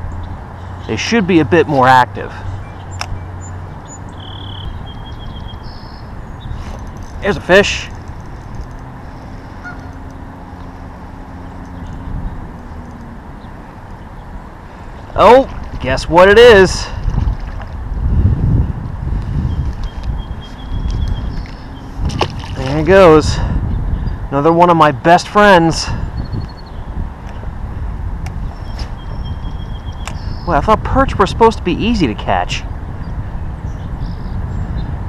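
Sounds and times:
wind rumbling on microphone: 0.0 - 35.0.

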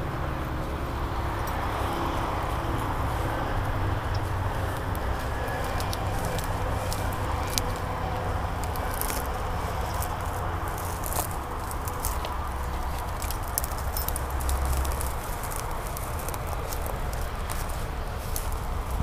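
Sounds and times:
steady low rumble: 0.0 - 19.0
dry brush crackling underfoot: 0.5 - 19.0.

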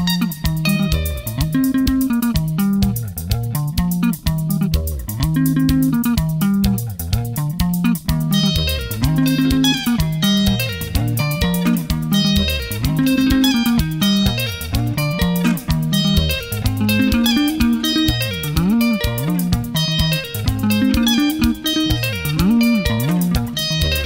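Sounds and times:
fast picked electric guitar: 0.0 - 24.0
higher lead guitar: 0.0 - 24.0
repeating bass guitar line: 0.0 - 24.0
steady drum beat: 0.0 - 24.0.

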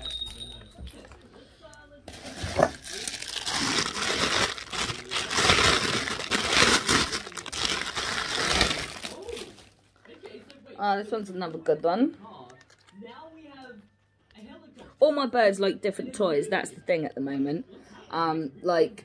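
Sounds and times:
plastic bag crinkling: 2.1 - 9.9.

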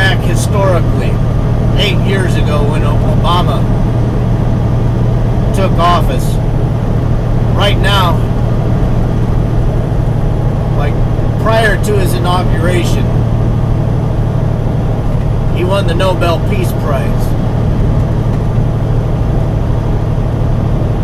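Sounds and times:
man speaking: 0.0 - 1.2, 1.8 - 3.7, 5.5 - 6.4, 7.5 - 8.3, 10.7 - 13.2, 15.5 - 17.4
truck engine droning: 0.0 - 21.0.

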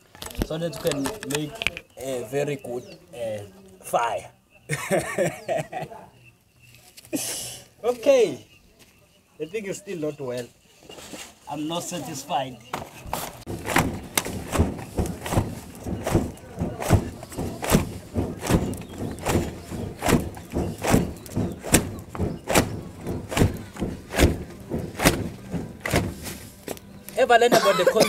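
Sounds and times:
sack flapping over fire: 13.2 - 27.2.

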